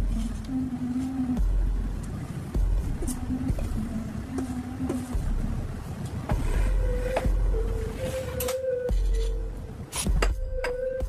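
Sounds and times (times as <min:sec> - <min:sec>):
deep bass pulse: 0:01.3 - 0:08.0.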